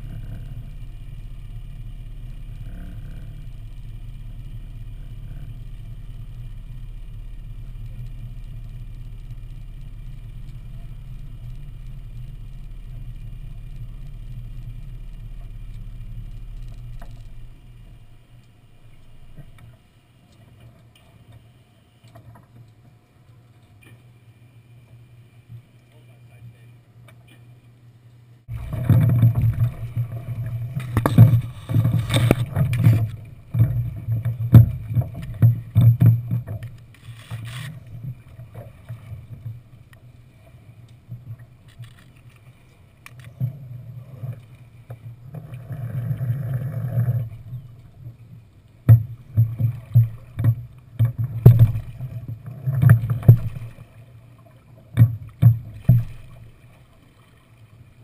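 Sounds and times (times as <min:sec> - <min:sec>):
knocks and thumps in a dinghy: 0:00.0 - 0:24.1, 0:28.5 - 0:58.0
low hull rumble: 0:00.0 - 0:58.0.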